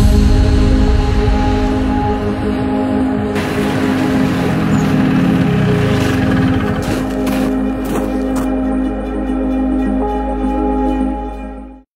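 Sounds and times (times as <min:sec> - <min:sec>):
organ-like background music: 0:00.0 - 0:11.9
snowmobile engine idling: 0:03.4 - 0:08.5.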